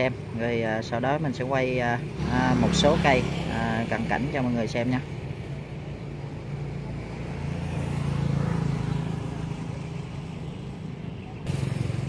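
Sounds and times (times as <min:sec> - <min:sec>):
vehicle engine running: 0:01.8 - 0:12.0.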